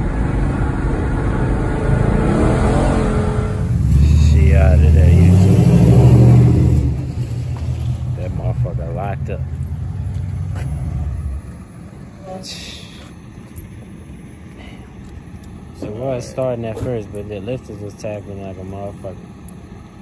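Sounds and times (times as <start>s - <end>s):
car engine revving: 0.0s - 11.8s
road noise inside moving car: 0.0s - 20.0s.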